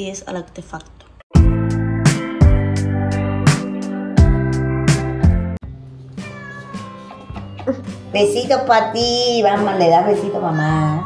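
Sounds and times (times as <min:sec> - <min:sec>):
music with struck notes: 0:01.3 - 0:10.4
faint background music: 0:05.6 - 0:11.0
cat meowing: 0:06.2 - 0:07.8.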